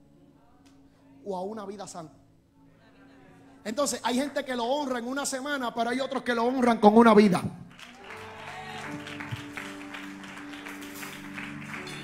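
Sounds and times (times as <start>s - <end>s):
electric keyboard sustained chords: 7.9s - 12.0s.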